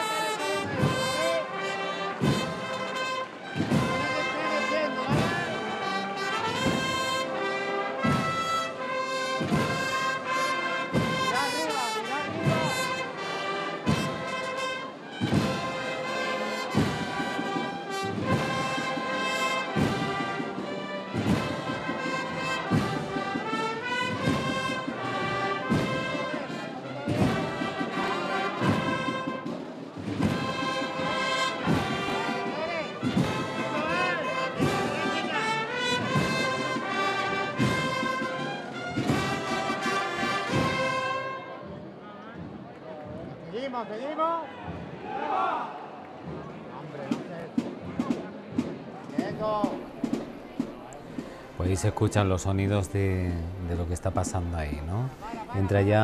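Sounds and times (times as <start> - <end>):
brass band playing a march: 0.0 - 42.5, 46.2 - 54.4, 55.1 - 56.0
steady drum beat: 0.1 - 41.4, 47.1 - 56.0.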